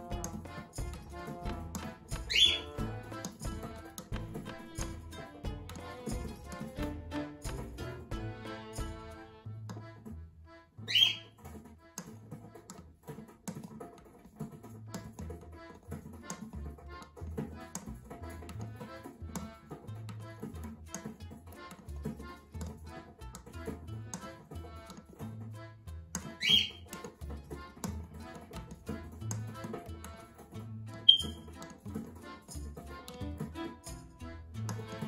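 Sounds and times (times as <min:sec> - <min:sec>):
music with low notes: 0:00.0 - 0:35.0
bird chirp rising: 0:02.3 - 0:02.7, 0:10.9 - 0:11.3, 0:26.4 - 0:26.9, 0:31.1 - 0:31.5
cockatiel shrill call: 0:02.3 - 0:02.7, 0:10.9 - 0:11.3, 0:26.4 - 0:26.8, 0:31.1 - 0:31.5.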